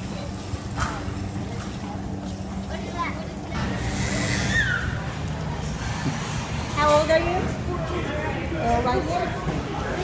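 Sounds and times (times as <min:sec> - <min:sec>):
low hum and rumble: 0:00.0 - 0:10.0.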